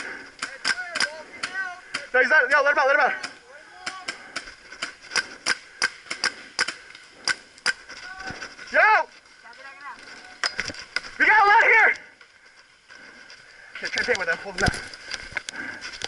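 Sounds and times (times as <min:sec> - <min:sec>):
paintball markers firing: 0:03.2 - 0:07.9
players shouting: 0:11.1 - 0:12.2.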